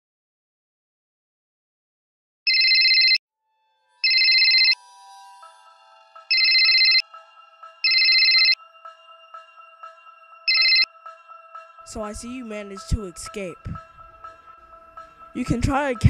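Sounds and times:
trilling phone ringtone: 2.5 - 3.2, 4.0 - 4.8, 6.3 - 7.1, 7.8 - 8.6, 10.5 - 10.9.

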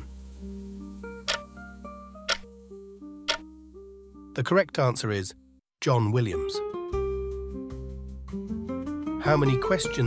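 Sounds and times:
soft background music: 0.1 - 10.0
clock ticking timer: 1.3 - 1.5, 2.3 - 2.5.

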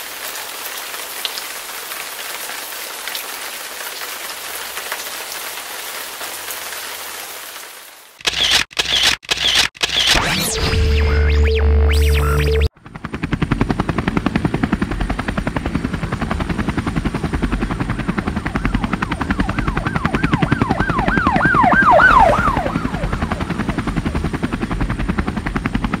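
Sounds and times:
helicopter rotor chopping: 8.2 - 26.0
music: 10.6 - 12.7
rising and falling whoop: 19.5 - 23.4.

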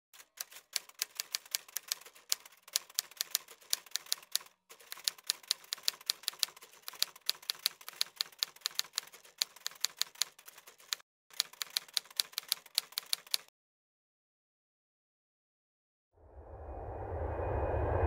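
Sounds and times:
typewriter keys clacking: 0.2 - 13.5.

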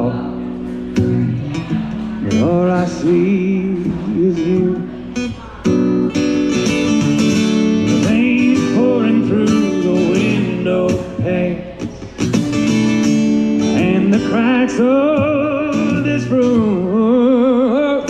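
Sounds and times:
acoustic guitar strumming: 0.0 - 18.0
man singing wordless notes: 1.1 - 5.4, 7.6 - 12.2, 13.2 - 18.0.

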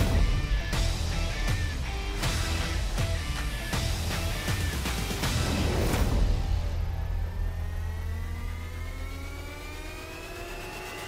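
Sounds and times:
engine accelerating: 0.0 - 11.0.

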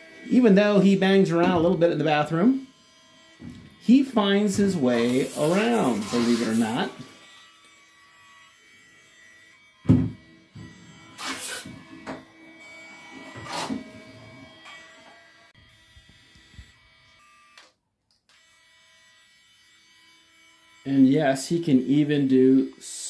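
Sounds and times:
small electric motor whirring: 2.4 - 22.0.

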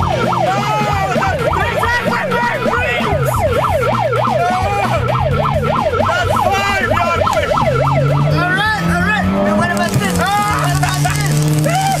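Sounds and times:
car engine running: 0.0 - 12.0
men shouting: 0.4 - 3.6, 4.3 - 5.2, 6.0 - 12.0.

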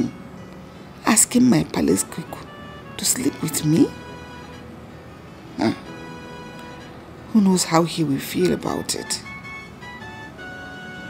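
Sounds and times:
soft background music chords: 0.0 - 11.0.

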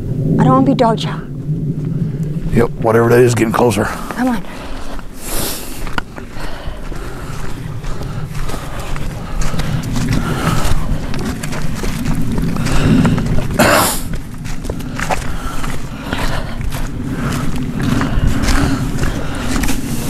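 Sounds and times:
steady low rumble: 0.0 - 20.0
footsteps crunching through dry leaves: 5.0 - 20.0.

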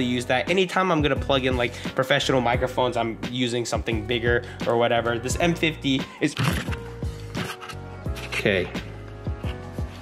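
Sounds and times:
light background music: 0.0 - 10.0
camera rig knocks and handling: 6.4 - 7.8
person speaking: 8.2 - 8.9.

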